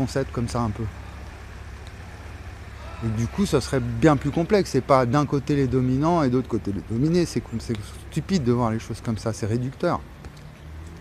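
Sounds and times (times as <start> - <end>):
street background rumble: 0.0 - 11.0.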